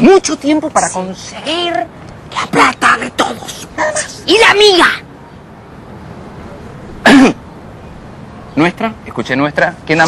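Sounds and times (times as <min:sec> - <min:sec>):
person clearing throat: 0:07.0 - 0:07.4.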